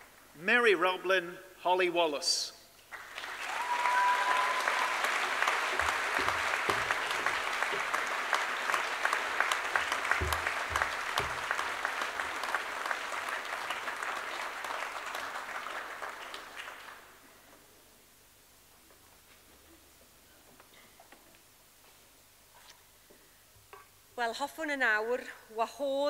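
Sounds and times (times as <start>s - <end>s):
audience applauding: 2.9s - 17.3s.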